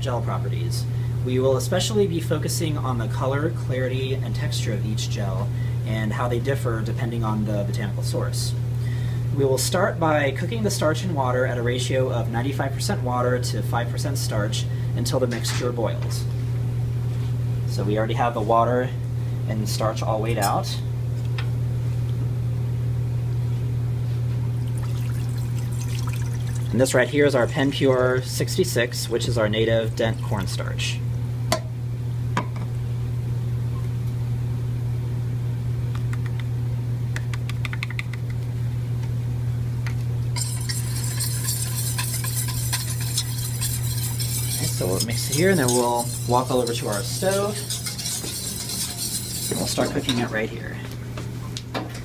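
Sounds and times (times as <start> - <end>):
low hum: 20.6 - 51.6
water trickling into a saucepan: 24.6 - 26.8
whisk scraping metal saucepan: 40.4 - 50.7.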